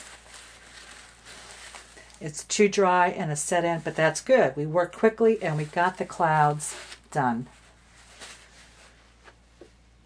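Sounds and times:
paper towel rustling on paper: 0.0 - 2.2, 3.0 - 9.5
low steady hum: 0.0 - 10.0.

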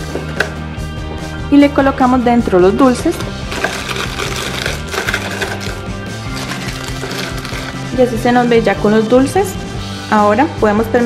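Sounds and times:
background music: 0.0 - 11.0
plastic candy wrappers crinkling: 3.4 - 7.9.

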